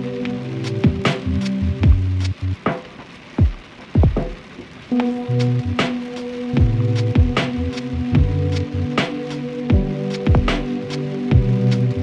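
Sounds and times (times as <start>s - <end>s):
held bass and keyboard notes: 0.0s - 2.7s, 4.9s - 12.0s
rain: 0.0s - 12.0s
slow music beat: 0.0s - 12.0s
deep kick drums dropping in pitch: 0.8s - 2.4s, 3.4s - 4.4s, 6.6s - 8.7s, 9.7s - 11.7s
sharp drum hit: 9.0s - 10.8s.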